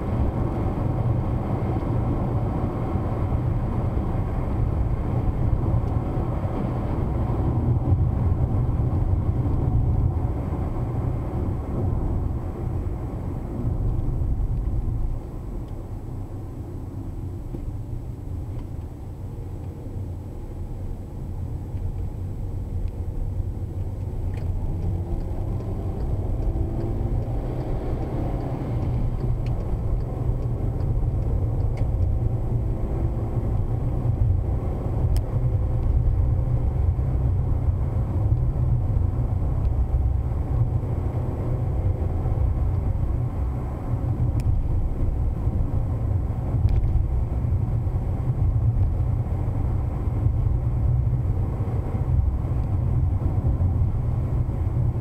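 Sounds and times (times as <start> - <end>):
engine and tyre rumble: 0.0 - 55.0.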